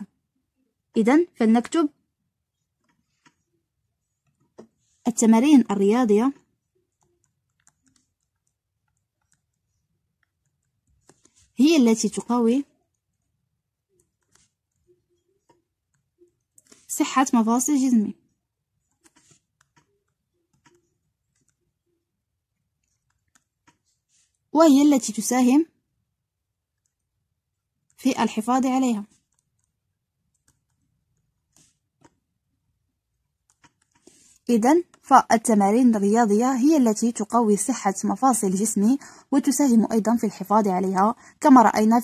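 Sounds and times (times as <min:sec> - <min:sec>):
pencil writing on paper: 0:06.2 - 0:16.9, 0:18.7 - 0:24.5, 0:28.2 - 0:32.4, 0:33.3 - 0:35.1.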